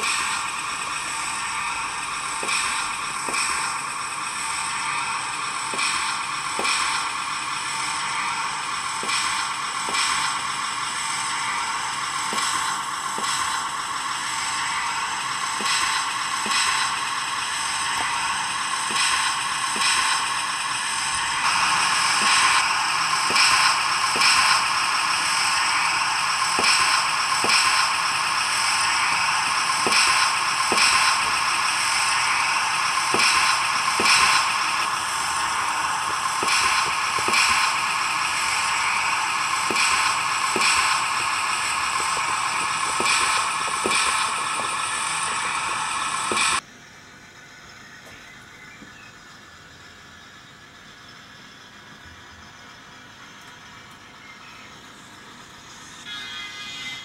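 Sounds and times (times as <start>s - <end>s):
model train engine drone: 0.0s - 57.0s.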